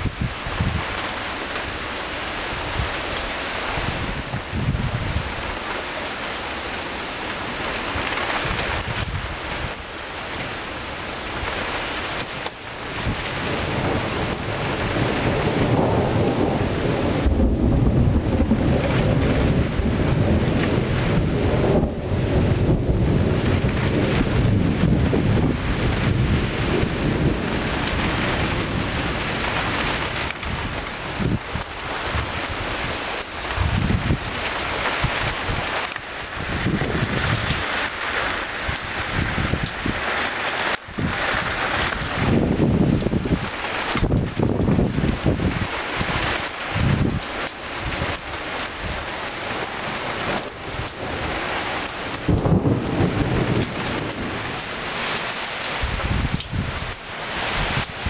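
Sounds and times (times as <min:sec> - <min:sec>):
rain and wind on microphone: 0:00.0 - 0:58.0
thunder rumbling: 0:11.2 - 0:58.0.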